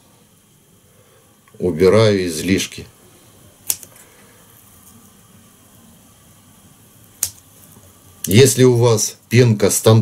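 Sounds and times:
small scissors snipping: 0:03.6 - 0:03.9.

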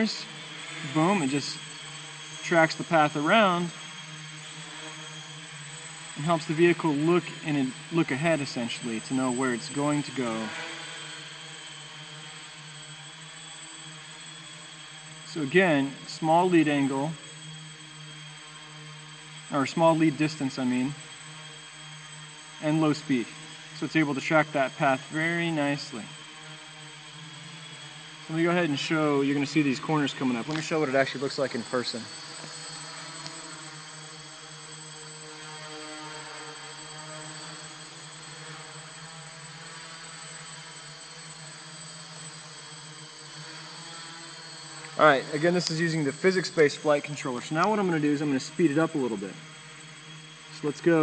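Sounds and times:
drone motors humming: 0:00.0 - 0:51.0
quadcopter propellers buzzing: 0:00.0 - 0:51.0.

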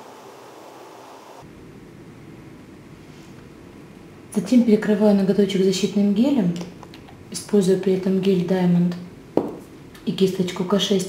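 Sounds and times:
background recording hiss: 0:00.0 - 0:11.0.

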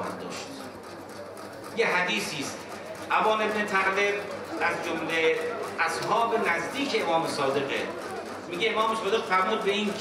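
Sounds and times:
man speaking into a microphone: 0:01.8 - 0:07.9, 0:08.5 - 0:10.0.

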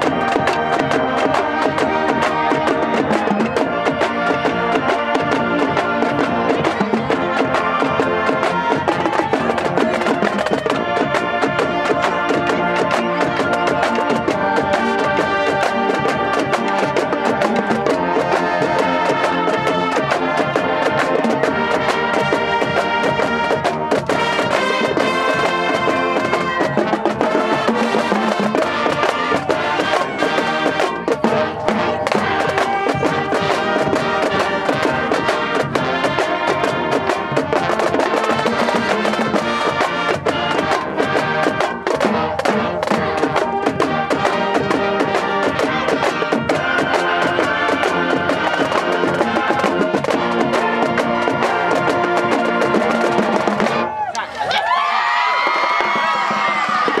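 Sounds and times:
snare and bass drums: 0:00.0 - 0:54.1
marching band playing: 0:00.0 - 0:57.0
people shouting: 0:00.0 - 0:57.0.

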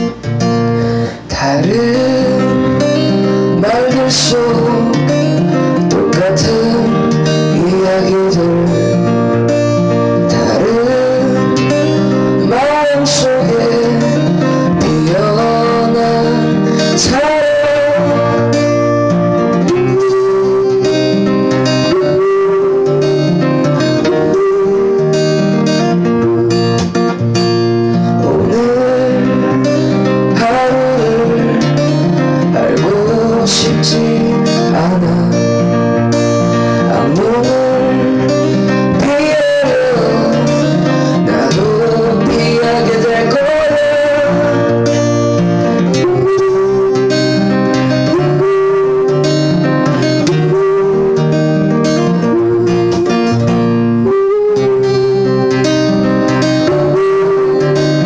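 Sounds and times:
acoustic guitar strumming: 0:00.0 - 0:58.0
man singing: 0:00.8 - 0:27.1, 0:27.8 - 0:58.0.

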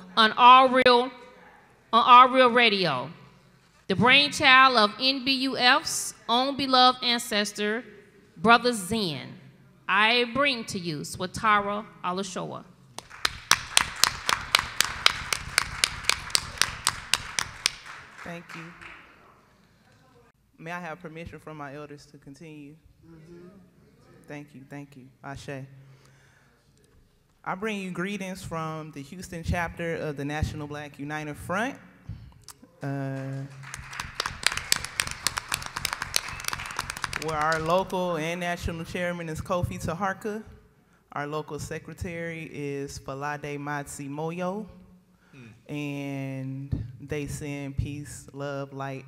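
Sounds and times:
loud even hand clapping: 0:12.9 - 0:19.3, 0:33.2 - 0:38.0
audience applauding: 0:13.0 - 0:19.3, 0:33.3 - 0:38.0.

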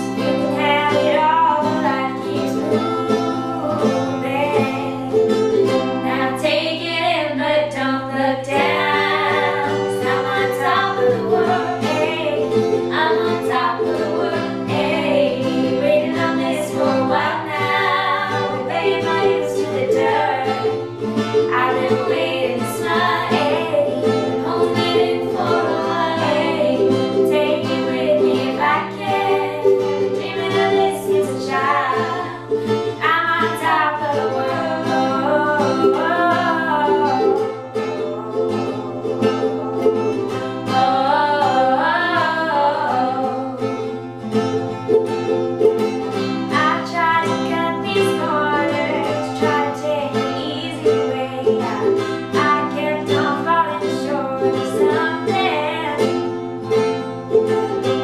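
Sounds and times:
women singing together: 0:00.0 - 0:43.8, 0:46.2 - 0:56.4
strummed acoustic guitar: 0:00.0 - 0:58.0
ukulele: 0:00.0 - 0:58.0.

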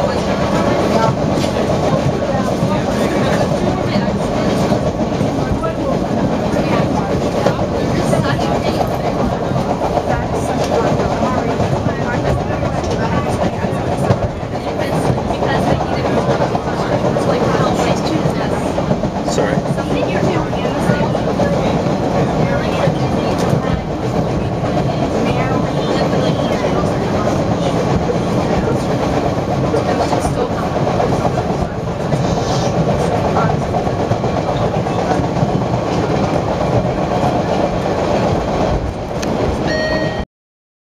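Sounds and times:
subway train wheels rumbling on rails: 0:00.0 - 0:40.2.

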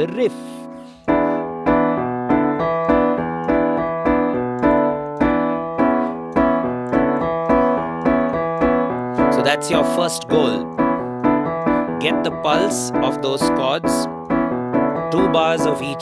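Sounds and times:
piano rock riff with chords: 0:00.0 - 0:16.0.

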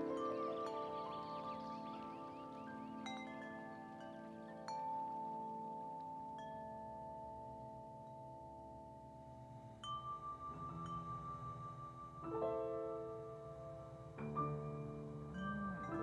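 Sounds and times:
chime-like struck notes: 0:00.0 - 0:16.0.

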